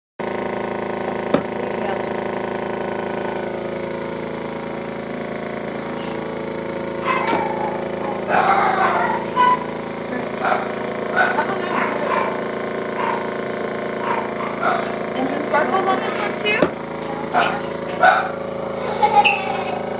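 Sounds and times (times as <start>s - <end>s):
airbrush compressor humming: 0.2s - 19.9s.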